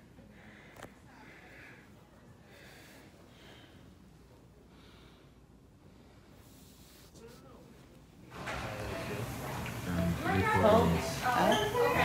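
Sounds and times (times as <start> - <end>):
faint breaths close to microphone: 0.0 - 8.0
low room hum: 0.0 - 12.0.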